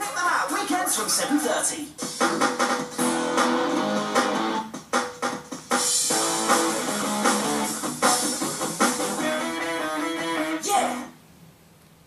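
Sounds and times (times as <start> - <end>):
percussion hits: 2.0 - 9.4
guitar music: 2.2 - 4.7, 6.0 - 10.6.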